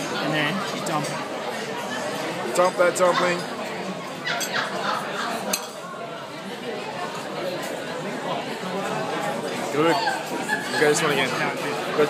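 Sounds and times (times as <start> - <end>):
diners chatting: 0.0 - 12.0
tableware clink: 4.4 - 4.6, 5.4 - 5.8.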